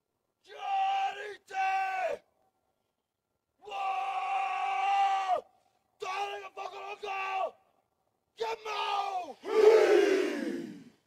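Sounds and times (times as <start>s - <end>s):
group shouting battle cry: 8.4s - 10.8s.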